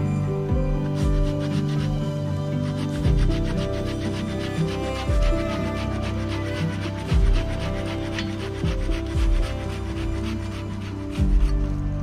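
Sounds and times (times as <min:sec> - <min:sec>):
background music: 0:00.0 - 0:12.0
rasping rubbing on bark: 0:00.0 - 0:12.0.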